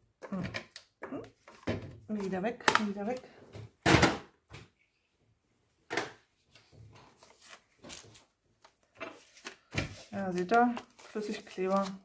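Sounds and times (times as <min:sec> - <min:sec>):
faint paper rustling: 0:06.4 - 0:12.0.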